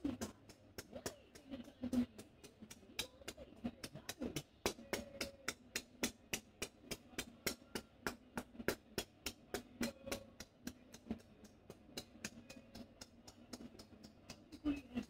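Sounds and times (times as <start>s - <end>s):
hands clapping on a head: 0.0s - 15.0s.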